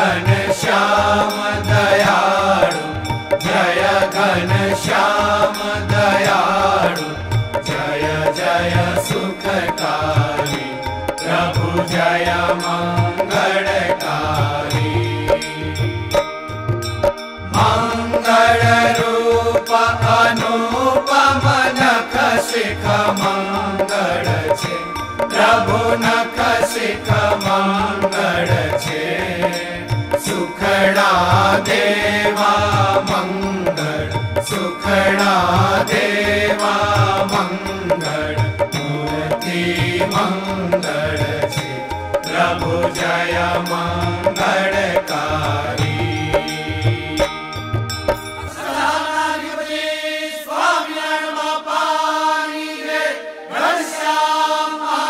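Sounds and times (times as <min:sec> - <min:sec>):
devotional chant sung to music: 0:00.0 - 0:55.0.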